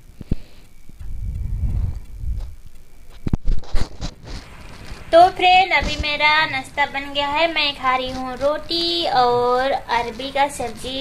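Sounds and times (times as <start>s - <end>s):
low steady rumbling: 0.0s - 3.5s.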